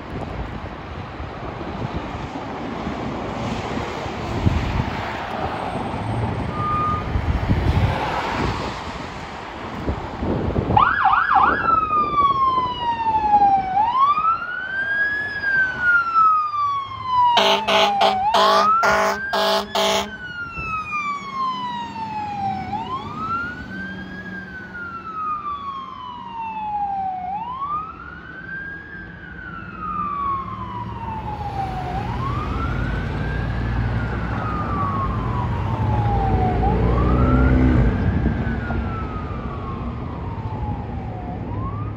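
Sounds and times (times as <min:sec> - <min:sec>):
low traffic rumble: 0:00.0 - 0:41.9
fire engine siren wailing: 0:01.5 - 0:08.2, 0:10.2 - 0:41.9
truck horn blasts: 0:17.4 - 0:20.2.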